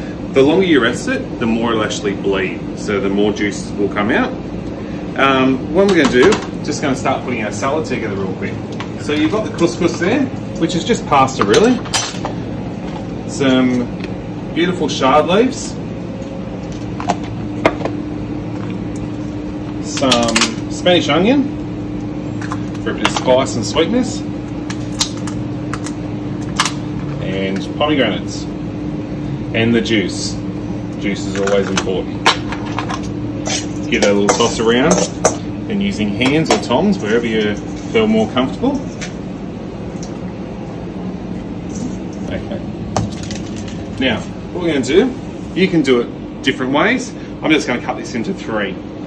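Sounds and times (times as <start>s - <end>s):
kitchen machinery hum: 0.0s - 49.0s.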